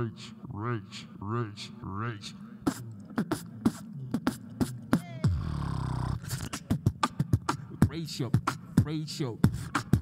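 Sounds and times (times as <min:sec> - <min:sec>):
beatboxing: 0:01.5 - 0:10.0.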